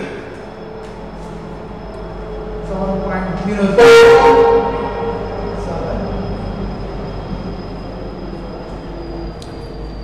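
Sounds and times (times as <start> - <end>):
constant low hum: 0.0 - 10.0
steady rumbling noise: 0.0 - 10.0.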